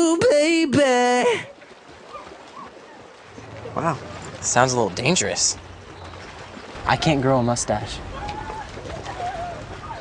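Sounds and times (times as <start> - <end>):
bird wavering calls: 2.0 - 4.3, 5.6 - 6.9.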